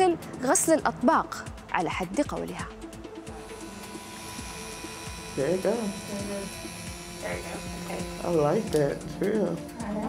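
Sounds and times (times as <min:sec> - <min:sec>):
rotary tool whining: 0:03.4 - 0:08.8.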